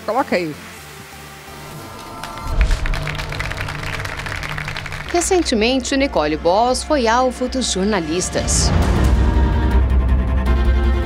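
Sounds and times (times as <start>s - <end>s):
deep bass hit: 1.7s - 6.8s.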